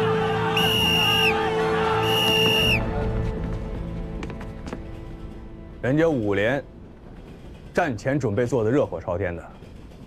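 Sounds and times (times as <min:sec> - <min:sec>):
background music: 0:00.0 - 0:10.0
high-pitched whistle blasts: 0:00.6 - 0:01.4, 0:02.0 - 0:02.8.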